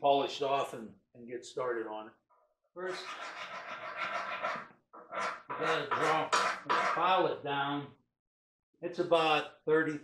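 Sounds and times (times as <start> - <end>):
hand file scraping steel: 2.9 - 7.2.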